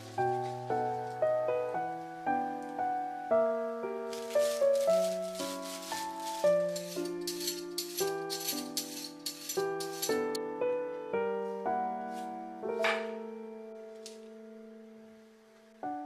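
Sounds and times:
gentle piano music: 0.0 - 16.0.

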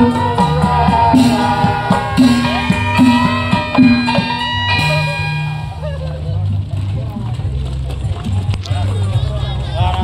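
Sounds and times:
gongs and drums procession music: 0.0 - 8.4
people talking and calling: 0.0 - 10.0.

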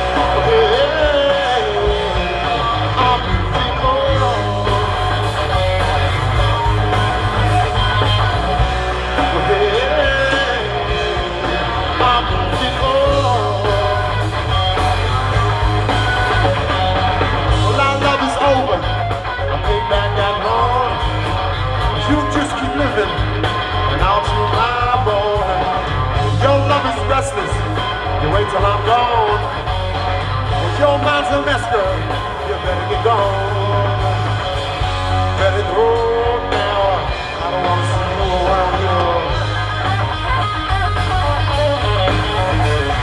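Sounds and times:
drum kit playing: 0.0 - 43.0
electric guitar bending notes: 0.0 - 43.0
heavy bass guitar line: 0.0 - 43.0.

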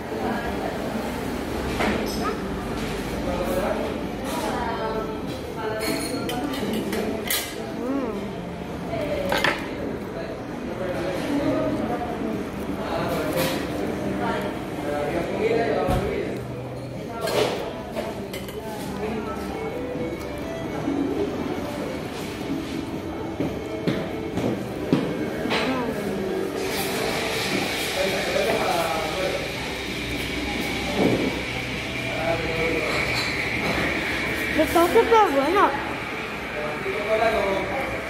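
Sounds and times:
murmur of voices: 0.0 - 38.0.

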